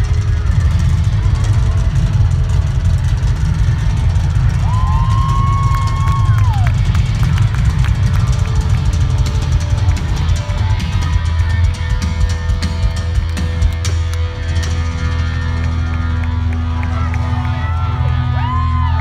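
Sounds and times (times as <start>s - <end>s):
live rock band playing loud: 0.0s - 19.0s.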